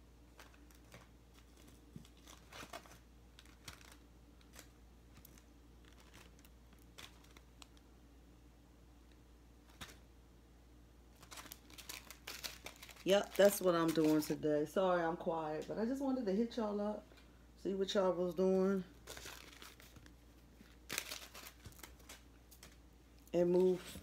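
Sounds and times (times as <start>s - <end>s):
faint clicks and rustles: 0.3s - 7.9s, 18.9s - 24.0s.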